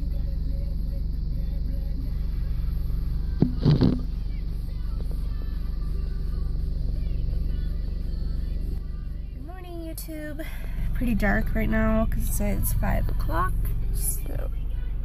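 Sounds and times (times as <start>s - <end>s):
car engine idling: 0.0s - 15.0s
quiet music: 0.0s - 15.0s
brief clatter: 3.4s - 4.1s.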